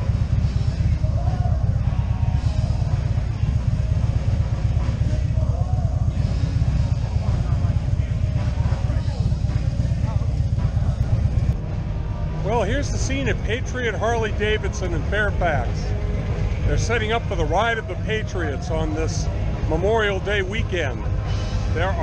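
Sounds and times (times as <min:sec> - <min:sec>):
faint voices: 0:00.0 - 0:22.0
motorcycle engine running slowly: 0:00.0 - 0:22.0.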